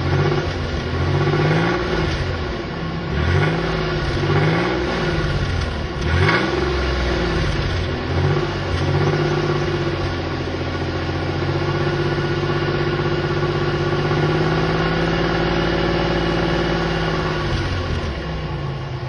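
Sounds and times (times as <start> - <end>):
car engine revving and idling: 0.0 - 19.0.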